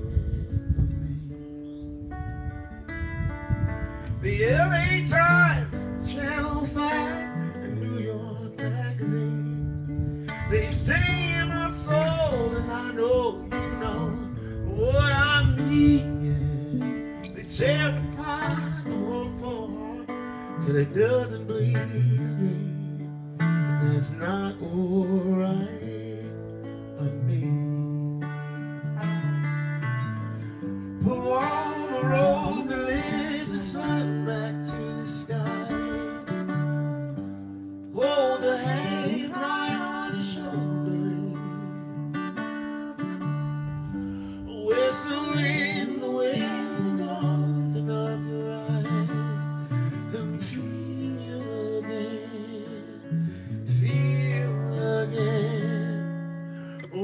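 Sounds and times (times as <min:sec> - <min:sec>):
man singing: 0:00.0 - 0:01.9, 0:04.0 - 0:28.3, 0:30.9 - 0:36.4, 0:37.9 - 0:41.9, 0:44.2 - 0:57.0
electric bass: 0:00.0 - 0:07.7, 0:09.2 - 0:20.0
acoustic guitar: 0:00.0 - 0:57.0.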